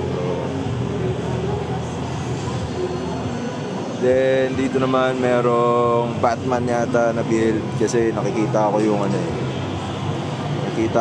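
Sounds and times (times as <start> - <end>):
exhibition hall din: 0.0 - 11.0.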